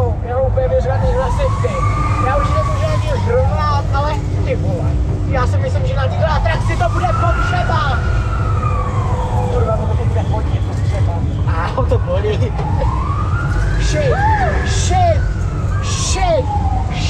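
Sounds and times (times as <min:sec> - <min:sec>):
heavy low rumble: 0:00.0 - 0:17.0
siren wailing: 0:00.0 - 0:17.0
voices shouting: 0:00.6 - 0:04.3, 0:05.8 - 0:17.0.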